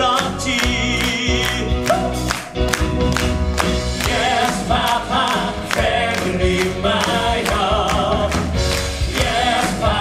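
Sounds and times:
men singing into microphones: 0.0s - 2.1s, 4.0s - 10.0s
live band accompaniment: 0.0s - 10.0s.

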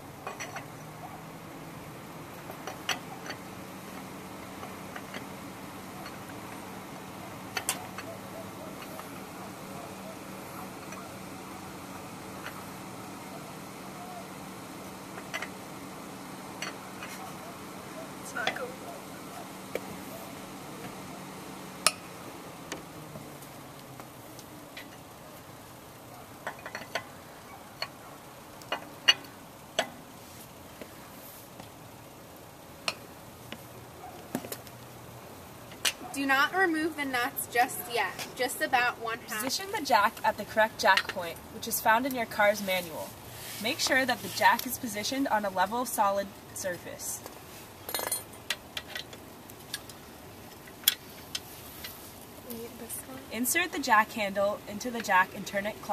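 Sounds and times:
steady low hum: 0.0s - 55.9s
wrench clinking on wheel nuts: 0.2s - 0.8s, 16.6s - 17.3s, 26.1s - 27.2s, 47.8s - 49.9s.

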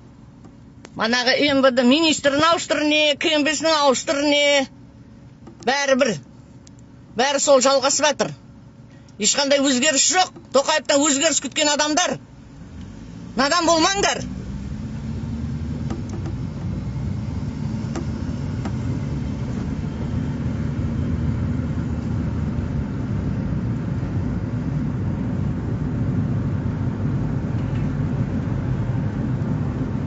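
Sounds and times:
car engine and tyre rumble: 0.0s - 30.0s.

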